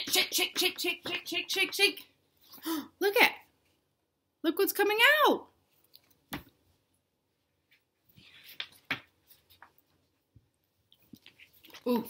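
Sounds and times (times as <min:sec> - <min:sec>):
paper pages rustling: 0:08.1 - 0:10.1.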